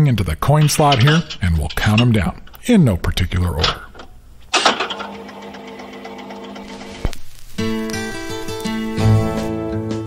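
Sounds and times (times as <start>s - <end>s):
jukebox motor hum: 3.8s - 7.1s.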